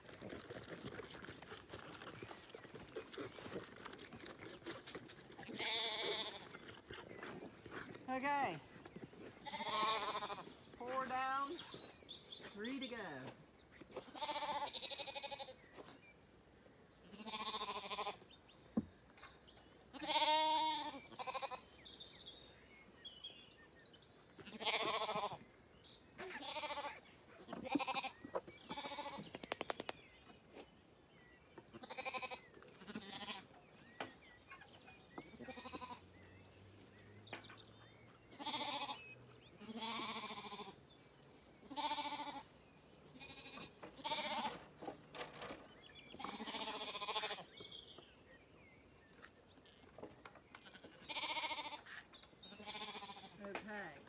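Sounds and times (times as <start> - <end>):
lambs bleating: 5.4 - 6.5, 9.4 - 10.5, 14.0 - 15.5, 17.1 - 18.2, 19.9 - 21.7, 24.4 - 25.4, 26.2 - 27.0, 27.6 - 29.3, 31.7 - 33.5, 35.4 - 36.0, 38.3 - 39.0, 39.6 - 40.8, 41.7 - 42.5, 43.2 - 44.6, 46.2 - 47.5, 50.6 - 51.9, 52.6 - 53.5.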